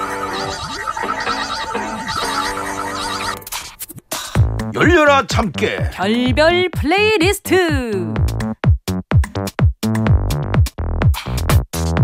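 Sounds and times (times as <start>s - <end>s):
jingle music with warbling tones: 0.0s - 3.6s
sharp clicks and noise bursts: 0.0s - 4.1s.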